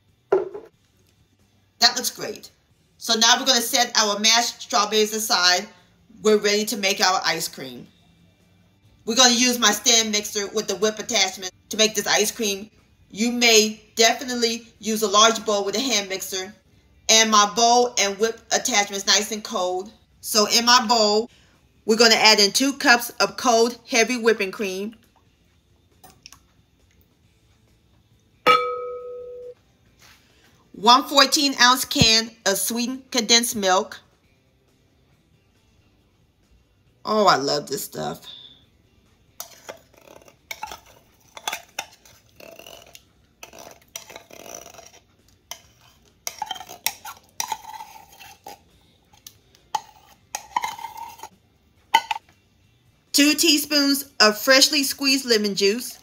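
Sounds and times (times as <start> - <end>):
glass clink ringing: 28.5 - 29.6
utensil scraping metal can: 39.4 - 48.6.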